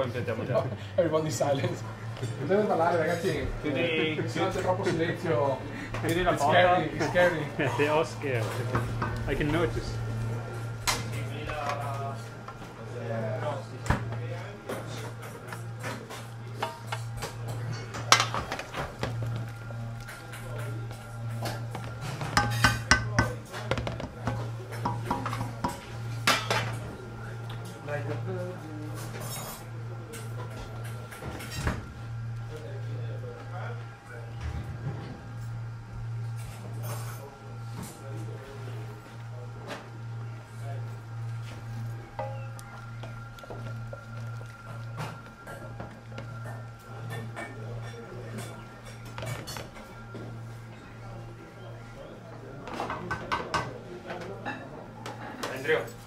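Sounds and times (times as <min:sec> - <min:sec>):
steady low hum: 0:00.0 - 0:56.0
metal utensils clinking on pan: 0:22.3 - 0:23.8.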